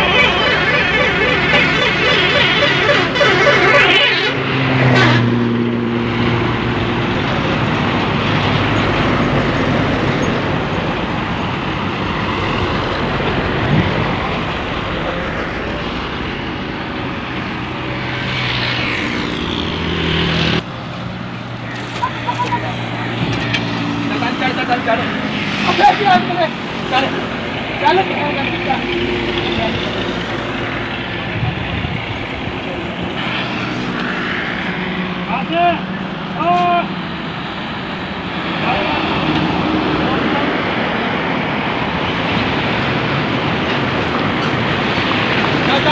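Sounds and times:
men calling out: 0:00.0 - 0:04.1, 0:35.3 - 0:37.0
excavator diesel engine running: 0:00.0 - 0:05.0, 0:05.9 - 0:18.4.

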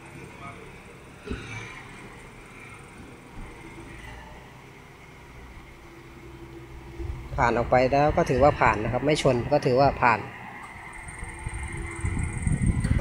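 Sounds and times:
car engine humming: 0:00.0 - 0:13.0.

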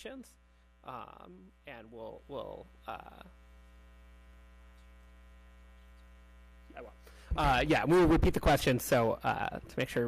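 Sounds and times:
man speaking: 0:00.0 - 0:03.4, 0:06.7 - 0:10.0
electrical mains hum: 0:00.0 - 0:10.0.

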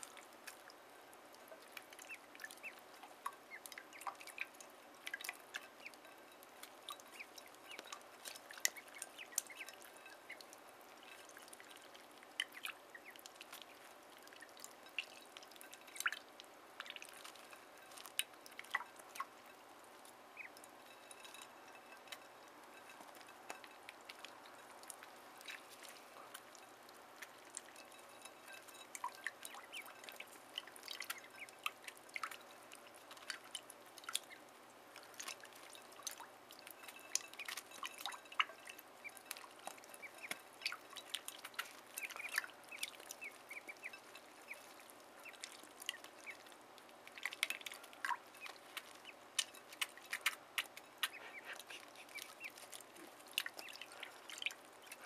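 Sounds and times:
ducklings splashing in water: 0:00.0 - 0:55.0.

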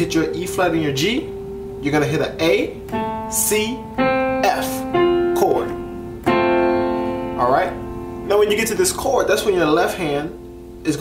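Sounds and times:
piano chord: 0:00.0 - 0:11.0.

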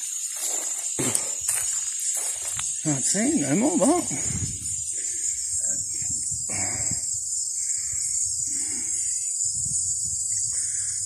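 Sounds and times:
insects buzzing: 0:00.0 - 0:11.0.

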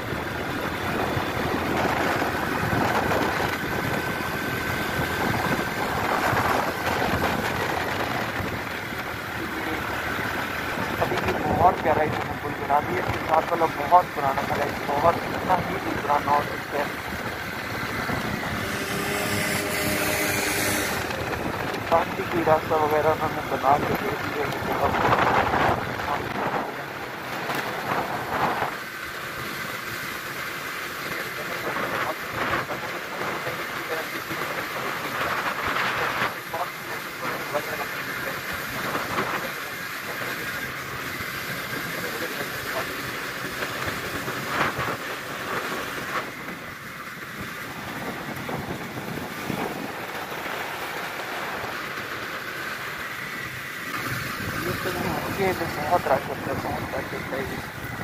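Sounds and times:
small motorcycle engine running: 0:00.0 - 0:58.0
wind and road noise: 0:00.0 - 0:58.0.

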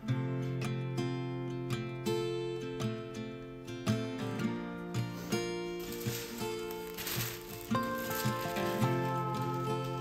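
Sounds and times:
plucked acoustic guitar music: 0:00.0 - 0:10.0
tissue paper rustling: 0:05.2 - 0:10.0.

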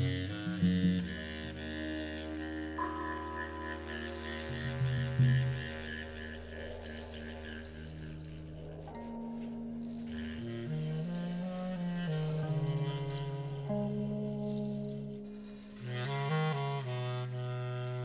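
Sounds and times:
saxophone: 0:00.0 - 0:18.0.

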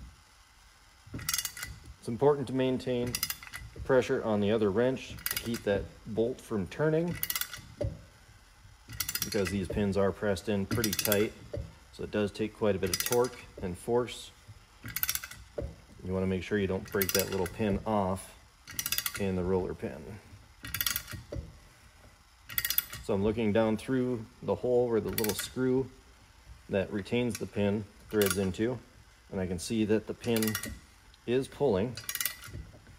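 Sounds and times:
ratcheting wrench clicks: 0:01.1 - 0:06.2, 0:06.8 - 0:08.1, 0:08.8 - 0:13.9, 0:14.7 - 0:15.9, 0:16.7 - 0:19.4, 0:20.6 - 0:21.6, 0:22.4 - 0:23.3, 0:25.0 - 0:25.7, 0:27.0 - 0:28.7, 0:30.0 - 0:32.9.

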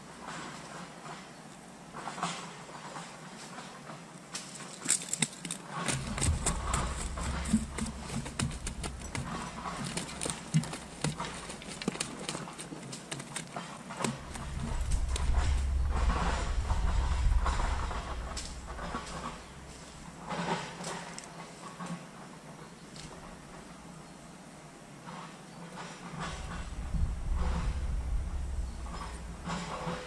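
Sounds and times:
fishing gear clicks and knocks: 0:04.4 - 0:15.4
low rumble: 0:06.0 - 0:11.6, 0:14.1 - 0:20.4, 0:26.2 - 0:30.0.

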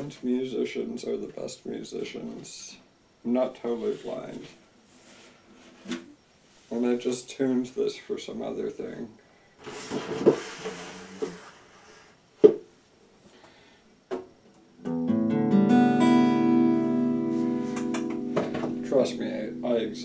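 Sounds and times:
guitar handling rustles and knocks: 0:09.6 - 0:11.4, 0:17.1 - 0:19.9
guitar chord ringing: 0:14.8 - 0:20.0.

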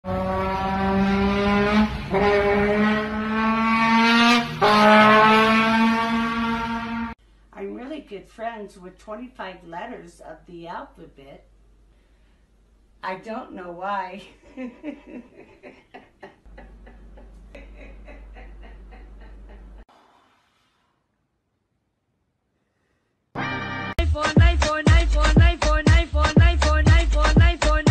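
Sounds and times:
trombone sliding notes: 0:00.1 - 0:07.2.

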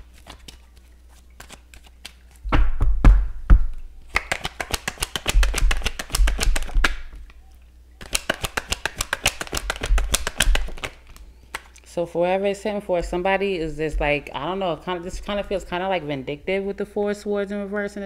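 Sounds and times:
card deck thumps: 0:02.5 - 0:07.3, 0:08.0 - 0:11.2
rapid card clicks: 0:04.1 - 0:07.2, 0:08.0 - 0:11.7.

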